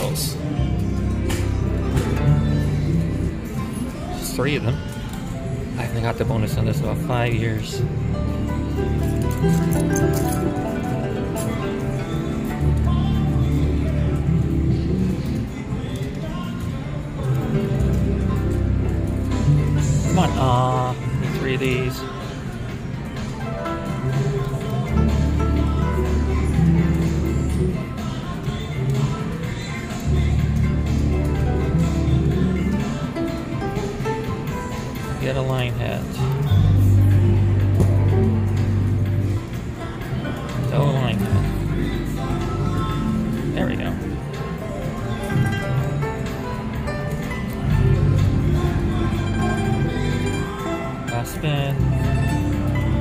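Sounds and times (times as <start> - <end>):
slot machine music: 0.0 - 53.0.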